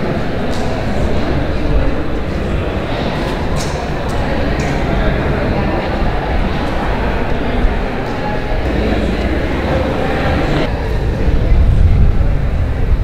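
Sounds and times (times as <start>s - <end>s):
indistinct voices: 0.0s - 13.0s
steady low rumble: 0.8s - 13.0s.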